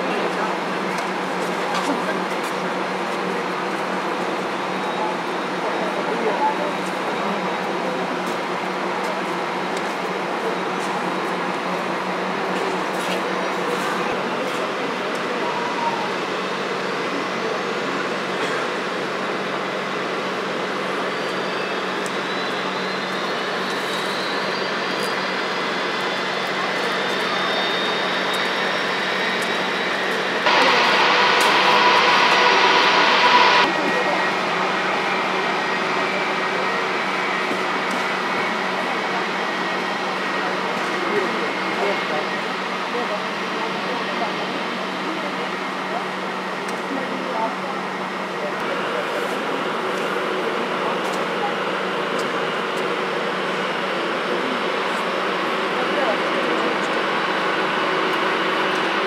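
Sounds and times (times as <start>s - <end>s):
jet engines hum: 18.9s - 42.4s
faint high whine: 21.6s - 34.3s.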